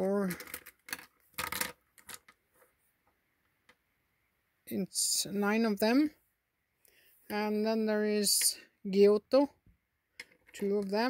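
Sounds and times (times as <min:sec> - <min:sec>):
plastic markers clattering on table: 0:00.3 - 0:02.4, 0:10.2 - 0:10.9.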